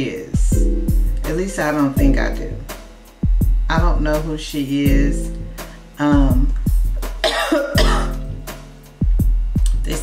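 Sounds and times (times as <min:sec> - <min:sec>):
music with kick drum beat: 0:00.2 - 0:10.0
woman coughing: 0:07.2 - 0:08.3.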